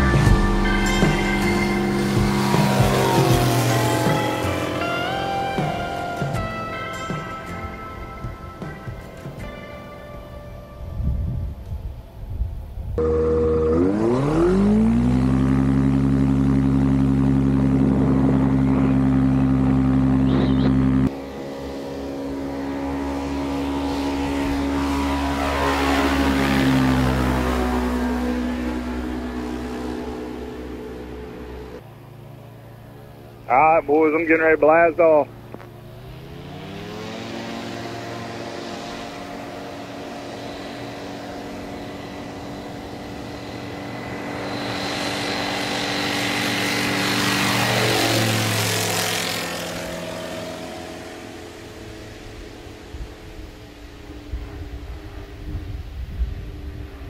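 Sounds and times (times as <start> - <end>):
propeller airplane engine: 0.0 - 57.0.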